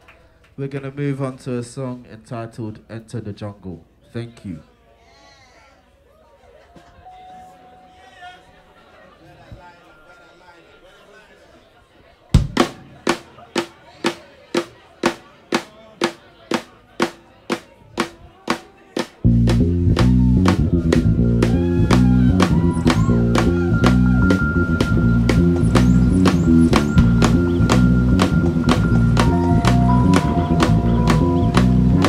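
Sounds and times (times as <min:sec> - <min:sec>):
drum sharp strikes: 0:12.4 - 0:32.0
jazz band playing: 0:19.2 - 0:32.0.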